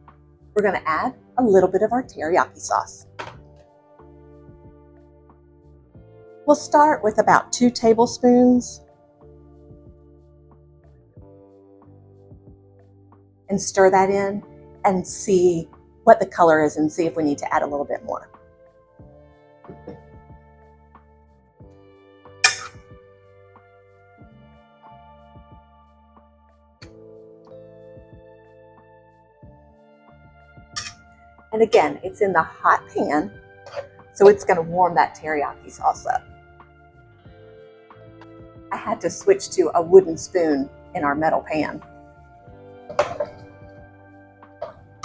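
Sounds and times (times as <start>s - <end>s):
soft background music: 0.0s - 45.0s
utensil striking metal saucepan: 22.4s - 22.8s, 30.8s - 31.0s, 42.9s - 43.4s.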